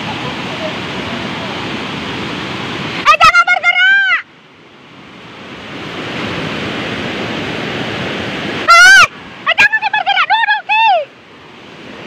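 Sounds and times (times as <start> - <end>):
river rushing roar: 0.0 - 12.0
loud high-pitched shout: 3.1 - 4.3, 8.7 - 11.1.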